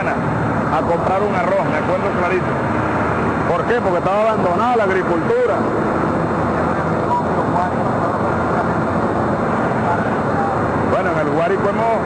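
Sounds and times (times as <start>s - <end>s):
heavy machinery engine running: 0.0s - 12.0s.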